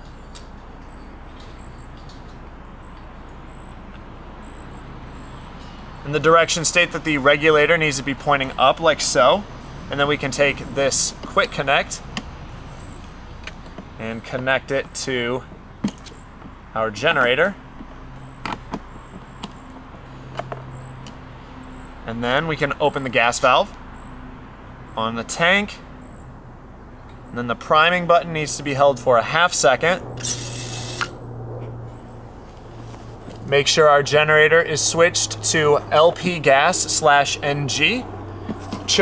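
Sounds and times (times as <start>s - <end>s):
steady low hum: 0.0s - 39.0s
gas hissing through regulator: 30.2s - 31.2s.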